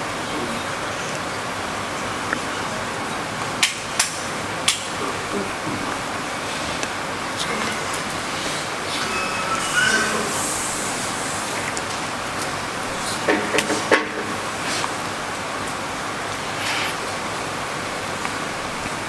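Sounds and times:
background room hiss: 0.0 - 19.0.

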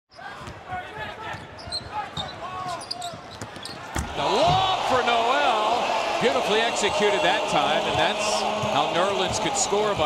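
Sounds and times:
arena crowd noise: 0.1 - 10.0.

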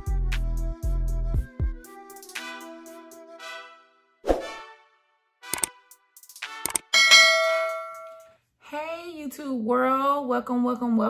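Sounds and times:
notification bell chime: 7.0 - 8.2.

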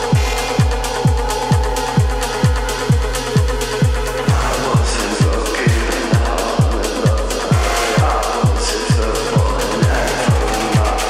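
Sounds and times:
driving kick drum: 0.0 - 11.0
electronic dance track: 0.0 - 11.0.

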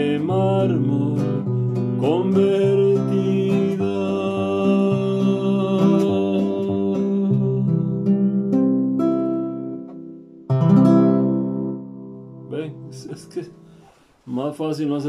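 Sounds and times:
classical guitar strummed chords: 0.0 - 13.9.

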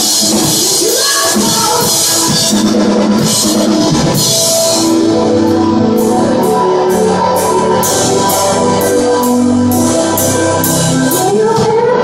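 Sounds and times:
rock band playing loud: 0.0 - 12.0.

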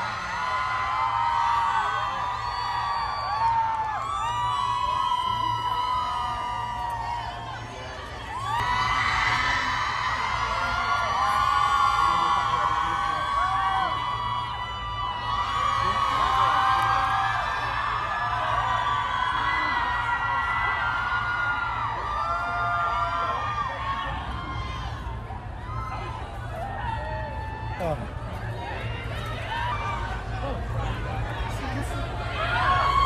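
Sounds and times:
crowd cheering and screaming: 0.0 - 33.0.

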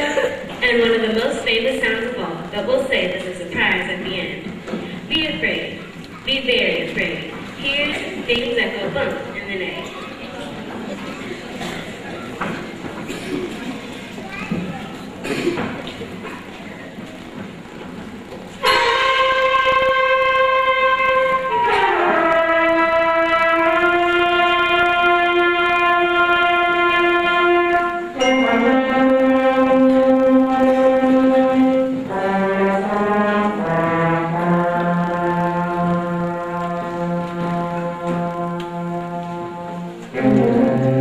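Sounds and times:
concert band sustained chords: 17.7 - 41.0.

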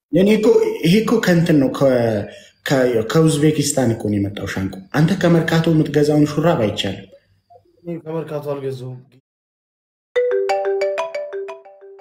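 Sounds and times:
bright chime melody: 10.2 - 12.0.

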